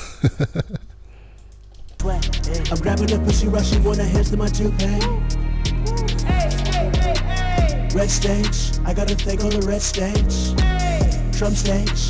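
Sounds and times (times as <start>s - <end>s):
person laughing: 0.0s - 1.0s
computer keyboard clicks: 1.4s - 2.0s.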